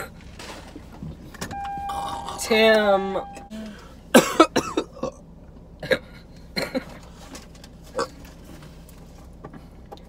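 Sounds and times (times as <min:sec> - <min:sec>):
car cabin hum: 0:00.1 - 0:05.8
steady even-pitched tone: 0:01.5 - 0:03.6.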